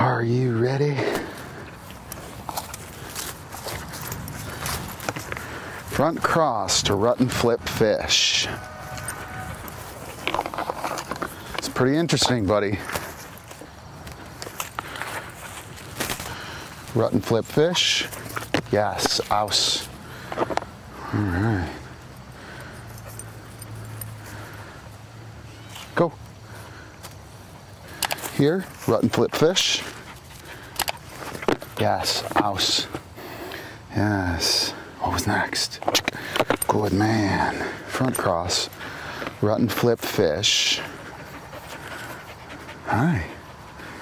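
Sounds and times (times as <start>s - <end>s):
footsteps on grass: 1.0s - 6.4s, 8.5s - 20.6s.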